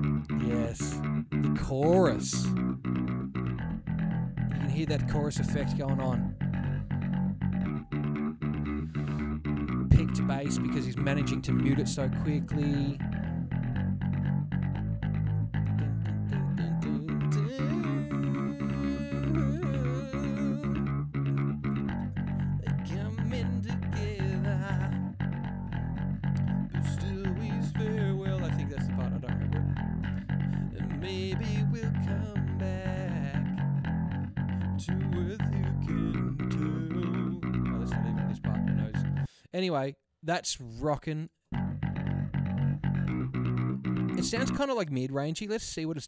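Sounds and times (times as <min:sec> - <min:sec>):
electric bass guitar with chorus effect: 0:00.0 - 0:39.4, 0:41.5 - 0:44.7.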